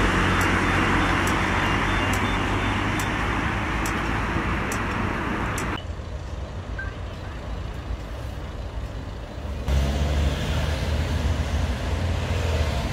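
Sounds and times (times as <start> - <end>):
road traffic rumble: 0.0 - 12.9.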